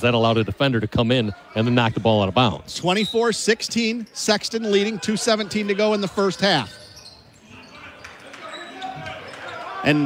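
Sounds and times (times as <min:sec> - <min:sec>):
faint crowd voices: 0:00.0 - 0:10.0.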